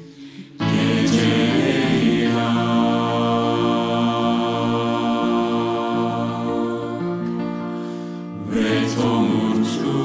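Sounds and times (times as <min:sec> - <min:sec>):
mixed choir singing a cappella: 0:00.0 - 0:10.0.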